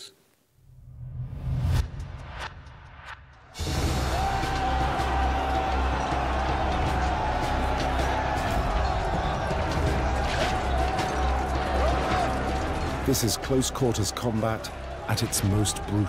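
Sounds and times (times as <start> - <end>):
dramatic background music: 0.9 - 16.0.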